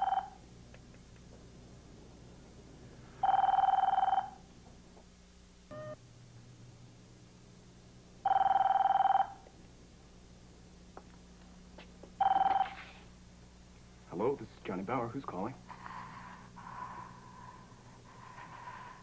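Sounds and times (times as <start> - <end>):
desk telephone ringing: 0.0 - 0.4, 3.2 - 4.4, 8.2 - 9.4, 12.2 - 12.8.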